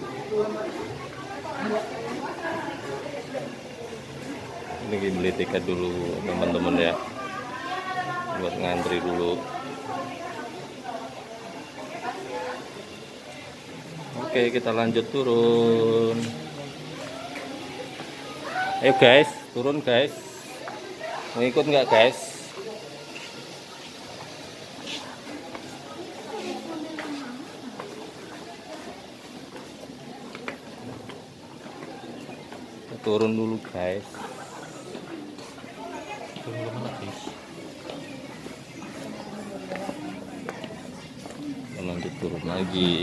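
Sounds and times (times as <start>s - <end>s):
indistinct background voices: 0.0s - 43.0s.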